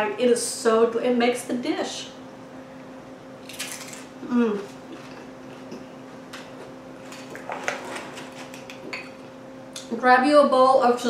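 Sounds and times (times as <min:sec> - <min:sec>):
steady low hum: 0:00.0 - 0:11.0
tortilla chips crackling: 0:03.4 - 0:04.1.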